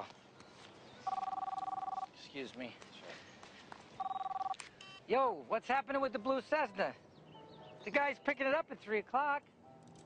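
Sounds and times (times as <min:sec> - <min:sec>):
mobile phone ringing: 0:01.0 - 0:02.1, 0:04.0 - 0:05.1.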